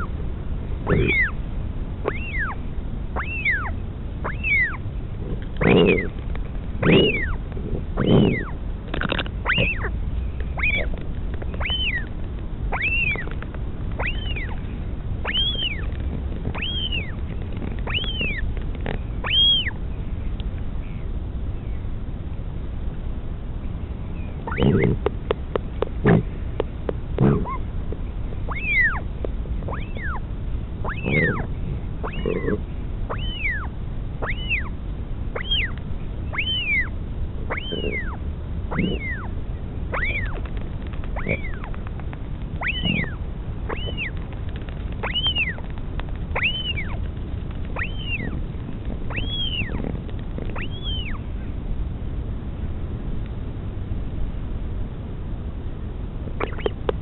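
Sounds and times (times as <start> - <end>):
steady low rumble: 0.0 - 57.0
chick begging calls: 0.8 - 1.4, 2.0 - 6.2, 6.8 - 13.4, 14.0 - 18.5, 19.2 - 19.8, 24.4 - 25.2, 27.2 - 27.7, 28.4 - 30.2, 30.8 - 41.9, 42.6 - 44.3, 45.0 - 45.7, 46.3 - 51.3, 56.4 - 57.0.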